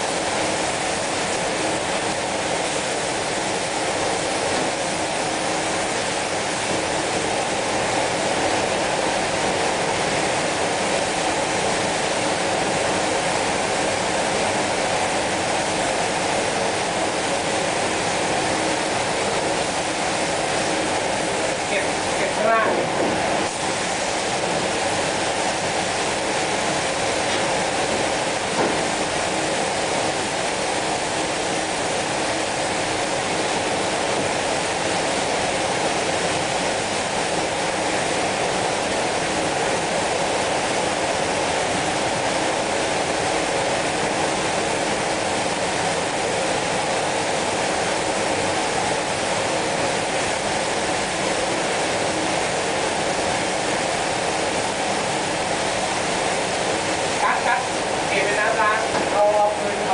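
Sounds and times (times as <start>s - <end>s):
spray gun hissing: 21.2s - 30.7s.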